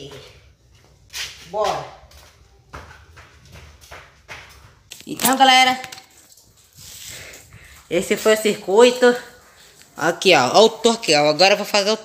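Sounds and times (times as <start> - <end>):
footsteps on concrete floor: 0.0 - 10.1.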